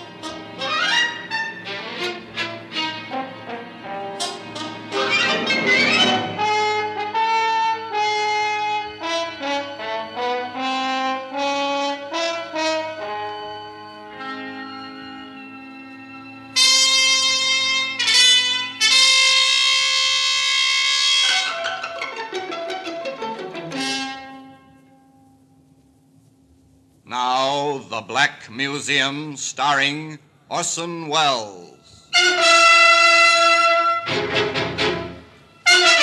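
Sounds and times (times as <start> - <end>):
orchestral music with brass: 0.0 - 24.9, 32.1 - 36.0.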